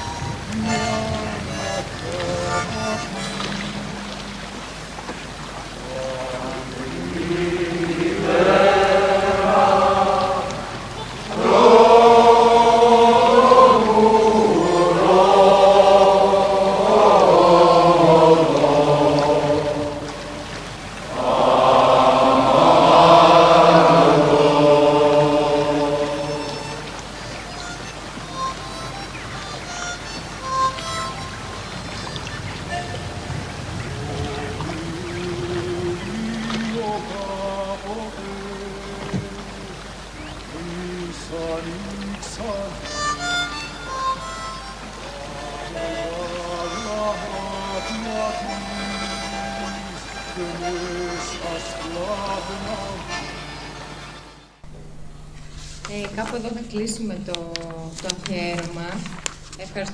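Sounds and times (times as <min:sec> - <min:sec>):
voices singing a slow chant: 0:00.0 - 0:54.8
faint scattered notes: 0:00.0 - 0:59.9.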